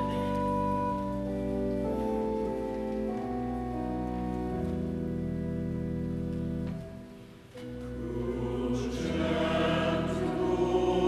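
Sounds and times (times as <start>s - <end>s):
sustained keyboard accompaniment: 0.0s - 11.0s
choir singing a hymn: 7.6s - 11.0s.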